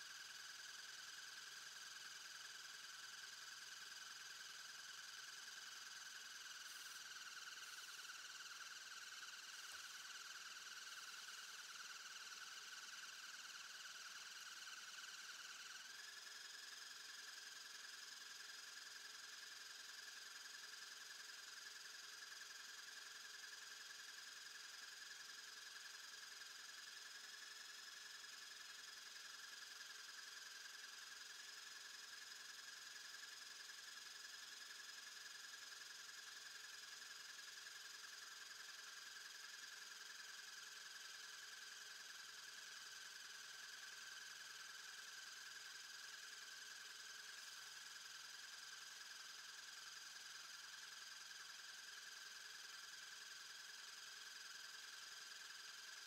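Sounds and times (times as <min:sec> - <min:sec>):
small electric motors whining: 0:05.9 - 0:16.8.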